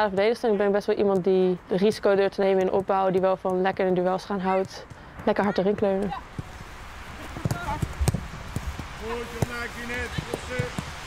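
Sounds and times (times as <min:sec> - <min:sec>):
boots kicking football: 0:01.8 - 0:11.0.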